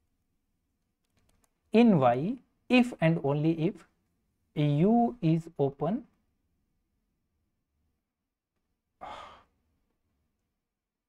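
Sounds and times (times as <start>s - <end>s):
man sighing: 9.0s - 9.5s.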